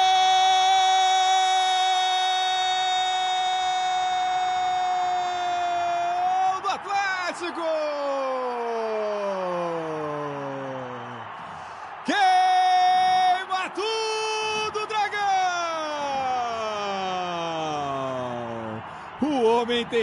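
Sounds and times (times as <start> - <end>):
commentator shouting goal cry: 4.4 - 10.4, 12.0 - 20.0.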